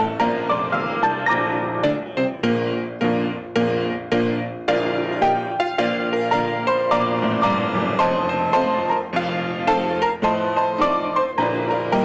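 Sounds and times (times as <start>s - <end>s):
piano playing hymn chords: 0.0s - 12.0s.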